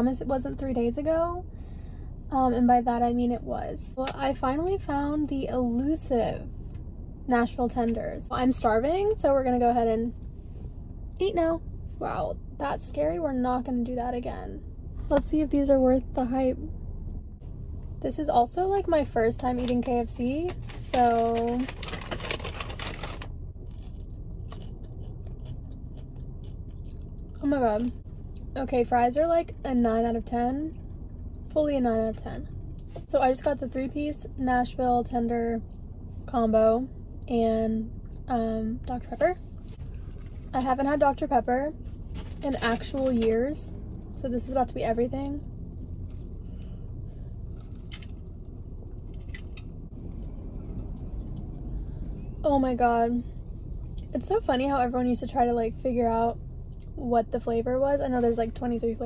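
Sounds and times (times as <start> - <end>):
car cabin rumble: 0.0 - 59.0
paper bag rustling: 20.5 - 23.3
chewing crunchy fries: 20.6 - 28.5, 47.4 - 48.3.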